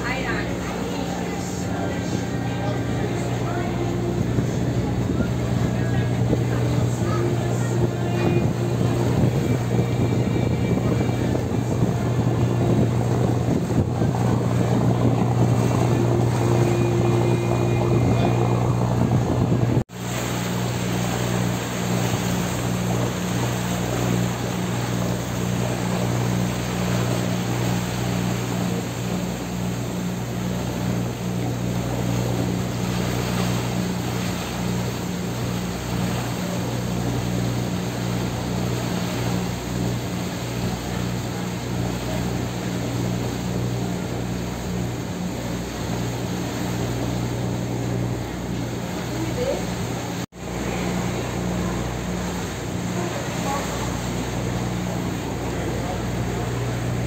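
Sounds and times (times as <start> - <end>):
boat engine droning: 0.0 - 57.0
wind and water noise: 0.0 - 57.0.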